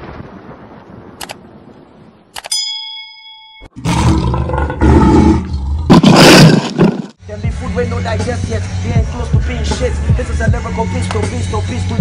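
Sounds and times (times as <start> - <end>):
bell ding: 2.4 - 3.8
lion roar sound effect: 3.8 - 7.0
person rapping: 7.3 - 12.0.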